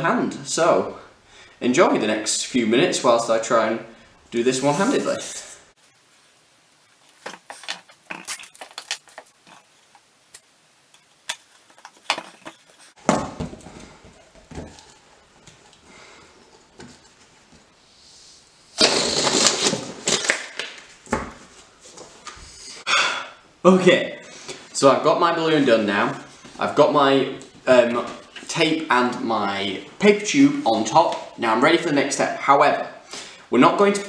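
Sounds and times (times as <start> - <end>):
tape crackles and clicks: 6.8 - 13.0, 18.8 - 21.2
tape pulled off roll: 18.7 - 21.3
rasping tape stretch: 18.8 - 20.5.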